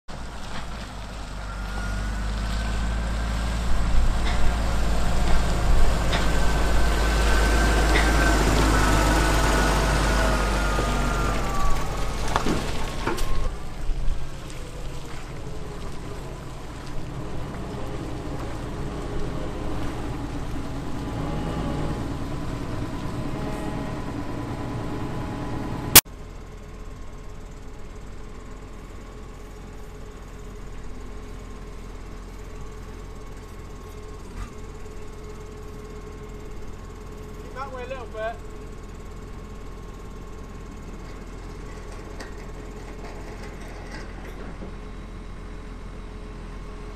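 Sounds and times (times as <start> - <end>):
tractor engine passing: 0.1 - 27.6.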